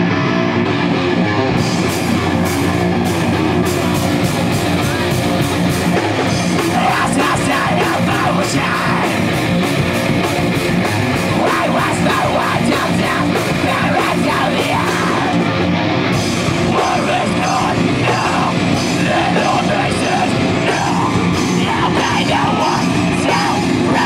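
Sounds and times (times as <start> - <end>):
metal band playing: 0.0 - 24.0
vocalist singing: 1.9 - 9.8, 11.1 - 15.6, 16.4 - 24.0.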